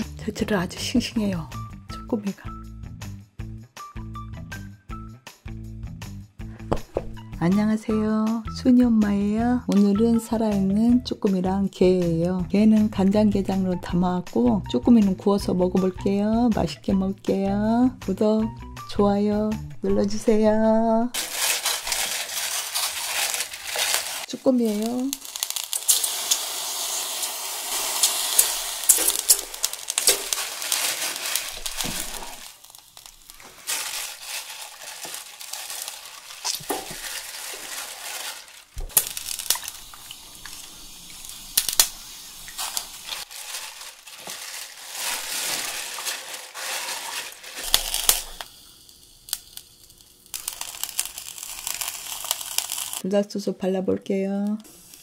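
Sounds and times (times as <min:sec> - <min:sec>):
octopus sizzling on a grill: 0:21.2 - 0:53.0, 0:54.6 - 0:55.0
metal tongs clicking on grate: 0:28.0 - 0:30.4.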